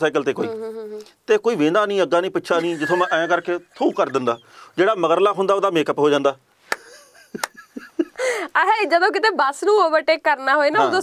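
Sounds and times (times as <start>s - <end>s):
man talking: 0.0s - 6.4s.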